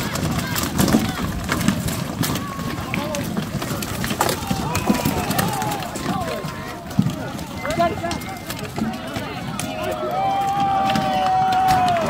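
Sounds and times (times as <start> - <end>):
many voices shouting: 4.1 - 12.0.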